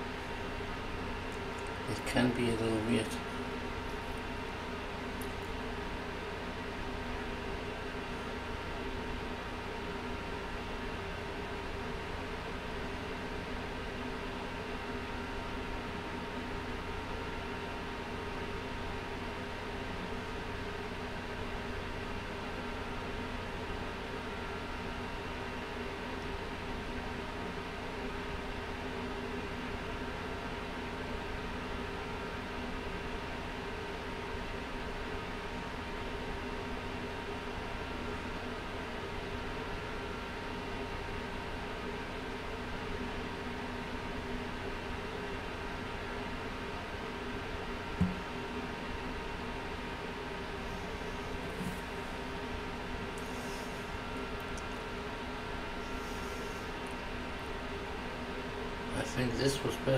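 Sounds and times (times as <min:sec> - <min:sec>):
machine fans whirring: 0:00.0 - 0:59.9.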